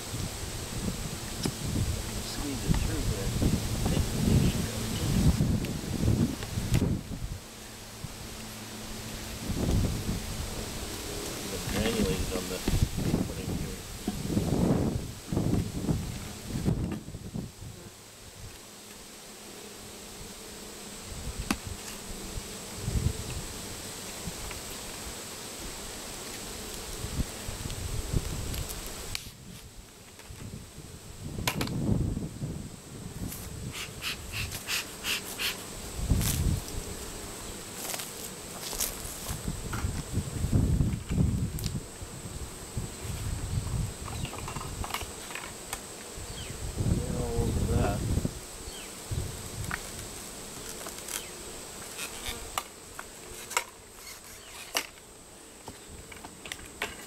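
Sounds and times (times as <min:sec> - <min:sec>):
bees buzzing: 0:00.0 - 0:57.0.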